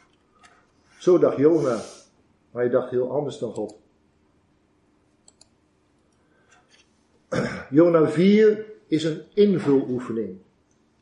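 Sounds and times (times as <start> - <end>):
faint short clicks: 5.2 - 6.6.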